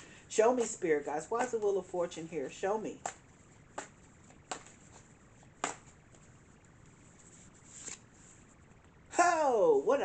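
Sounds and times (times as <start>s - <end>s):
sharp taps on cards: 3.0s - 5.0s, 5.6s - 6.0s
card rustle: 3.8s - 8.5s.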